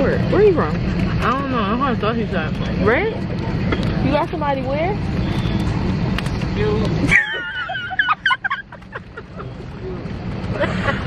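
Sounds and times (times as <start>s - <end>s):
woman laughing: 7.1s - 9.6s.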